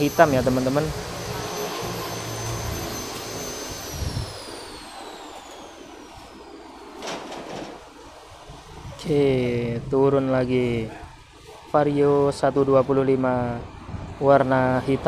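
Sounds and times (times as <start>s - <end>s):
low hum: 0.0s - 11.7s
high-pitched mechanical whine: 0.0s - 15.0s.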